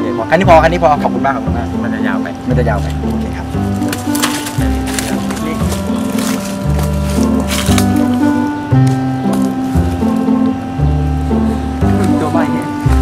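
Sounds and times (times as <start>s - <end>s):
background music with bass line: 0.0s - 13.0s.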